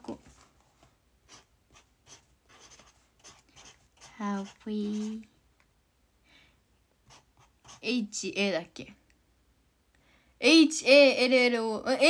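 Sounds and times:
pen scratching on paper: 1.2 - 5.3, 7.0 - 8.0.

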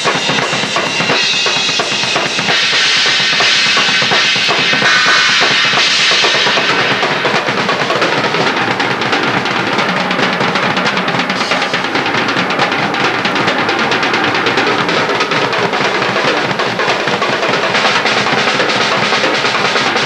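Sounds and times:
cymbal ringing: 0.0 - 20.0
drum kit solo: 0.0 - 20.0.

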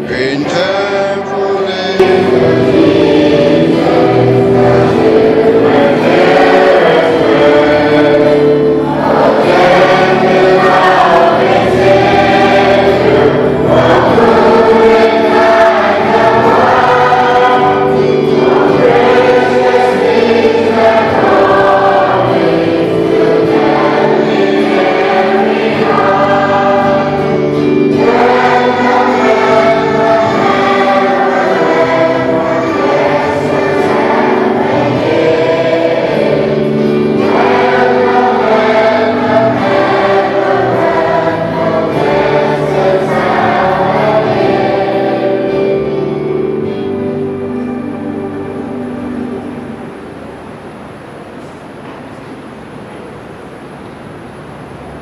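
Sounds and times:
congregation singing a hymn: 0.0 - 55.0.

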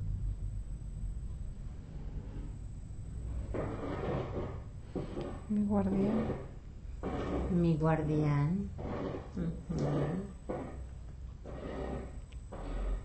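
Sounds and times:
steady low rumble: 0.0 - 11.5
woman speaking softly: 5.5 - 6.4, 7.5 - 8.7.

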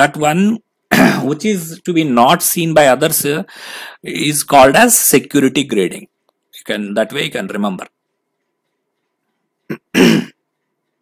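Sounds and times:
man clearing throat: 0.9 - 1.3, 9.7 - 10.4.

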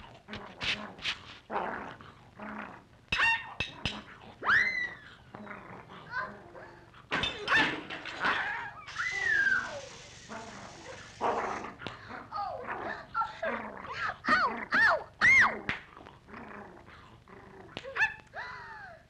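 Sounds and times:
high yelping cries: 4.4 - 5.0, 8.5 - 10.3
seltzer bottle spraying hiss: 8.9 - 11.2.

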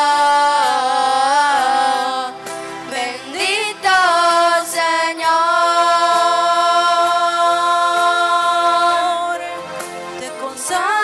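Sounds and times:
voices singing a hymn: 0.0 - 11.0.

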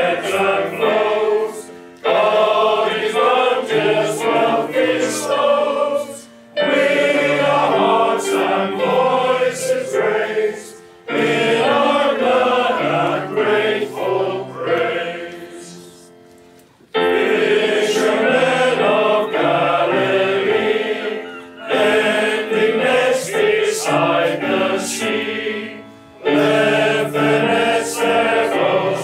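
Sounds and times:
male choir singing a hymn: 0.0 - 16.1, 17.0 - 29.0
keyboard accompaniment: 0.0 - 29.0.

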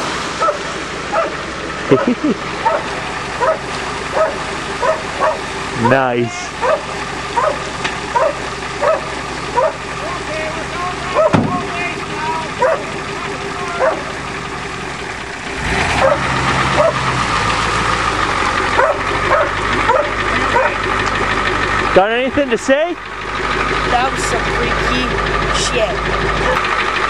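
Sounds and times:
vehicle engine running: 0.0 - 27.0
dog barking: 0.4 - 1.4, 2.0 - 5.4, 6.6 - 9.8, 11.1 - 11.4, 12.6 - 12.9, 13.8 - 14.1, 16.0 - 17.0, 18.8 - 20.8.

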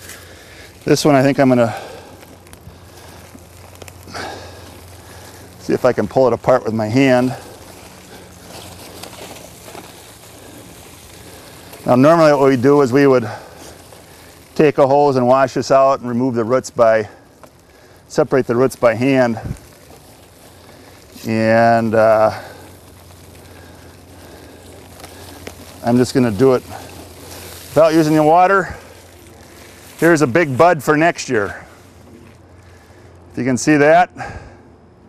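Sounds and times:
soil and roots crackling: 0.0 - 34.7
background hiss: 0.0 - 35.0.

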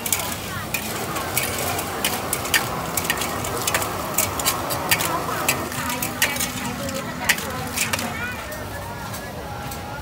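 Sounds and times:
food sizzling in a wok: 0.0 - 8.1.

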